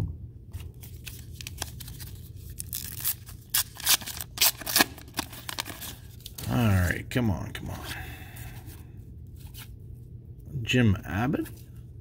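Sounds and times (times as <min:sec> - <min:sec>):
foil wrapper crinkling and tearing: 0:00.8 - 0:06.4.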